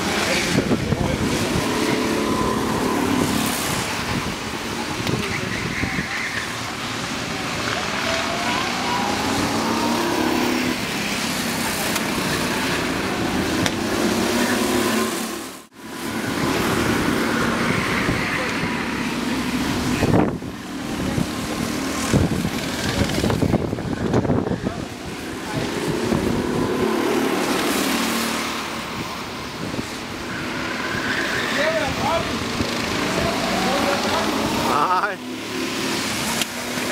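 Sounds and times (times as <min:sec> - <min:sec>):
people's voices: 0:00.0 - 0:15.2, 0:16.3 - 0:36.9
go-kart engines running: 0:00.0 - 0:36.9.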